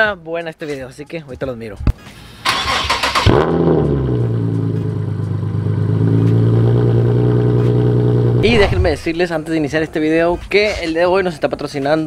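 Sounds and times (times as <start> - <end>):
car engine cranking: 2.4 - 8.3
car engine revving: 2.5 - 9.2
car engine idling: 4.3 - 9.1.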